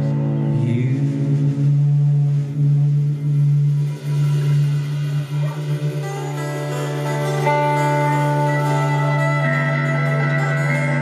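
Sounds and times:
country band playing: 0.0 - 11.0.

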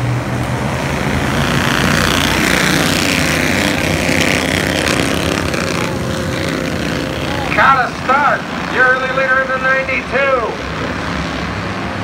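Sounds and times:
race car engines buzzing: 0.0 - 12.0.

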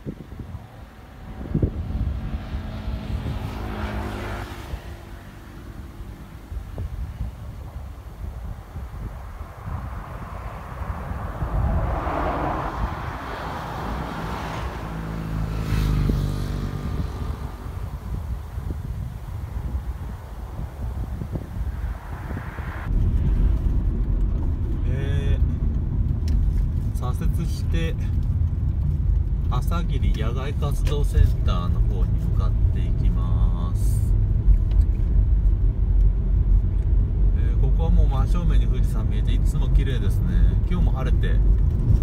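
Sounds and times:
vehicle passing: 0.0 - 26.8
road and engine hum inside car: 0.0 - 42.0
roadside traffic noise: 0.0 - 42.0.

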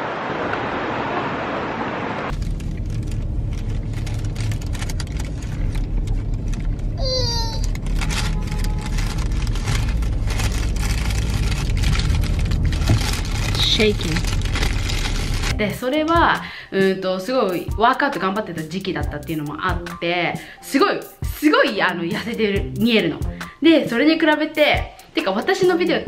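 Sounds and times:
car cabin rumble: 2.3 - 15.6.

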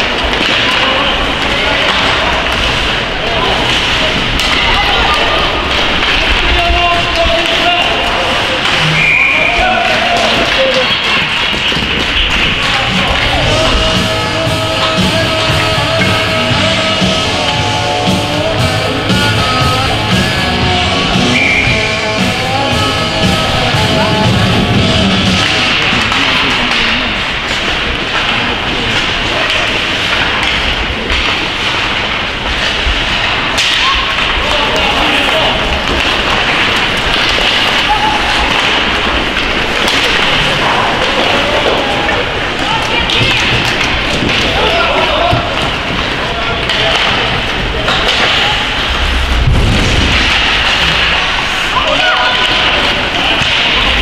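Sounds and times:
voices shouting: 0.0 - 27.2, 36.8 - 49.1, 50.4 - 54.0
skates and stick on puck: 0.0 - 54.0.

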